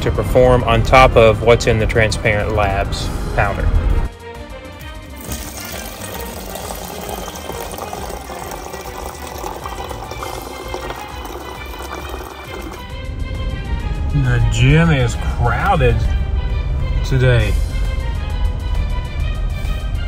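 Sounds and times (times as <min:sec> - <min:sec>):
background music: 0:00.0 - 0:20.0
water running into plastic cup: 0:05.1 - 0:12.9.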